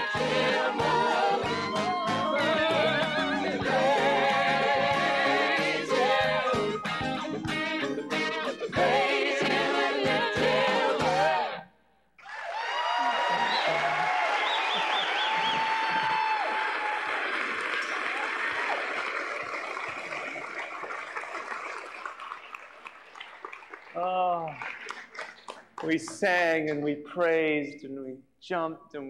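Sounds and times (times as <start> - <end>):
whoops and shouts: 12.2 - 17.3
audience cheering and applauding: 12.2 - 26.4.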